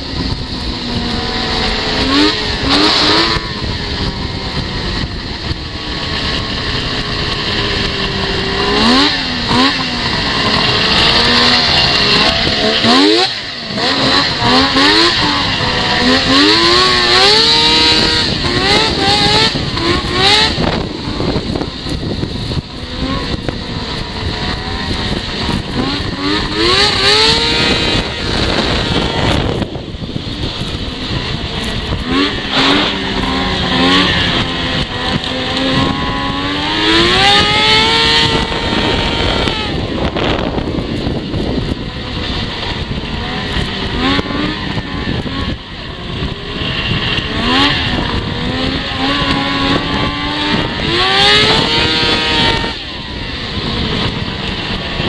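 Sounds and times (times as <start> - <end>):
snowmobile engine revving: 0.0 - 55.0.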